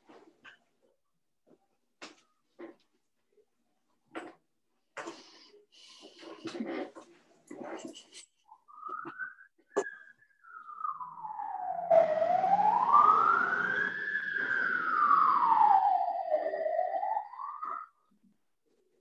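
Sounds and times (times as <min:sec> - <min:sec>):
emergency siren wailing: 0:10.4 - 0:18.0.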